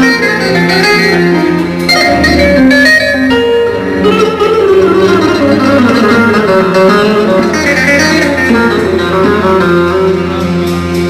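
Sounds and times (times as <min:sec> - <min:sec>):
live band music through pa: 0:00.0 - 0:11.0
plucked string melody: 0:00.0 - 0:11.0.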